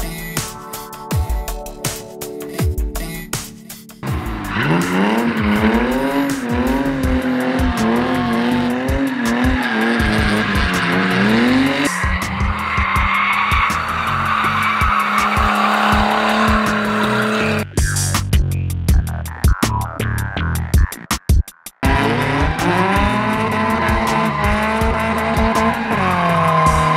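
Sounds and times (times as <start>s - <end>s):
car engine at high revs: 4.0s - 17.6s, 21.8s - 26.9s
car engine revving: 4.0s - 17.7s, 21.8s - 26.9s
tyres squealing: 4.1s - 17.6s, 21.8s - 26.9s.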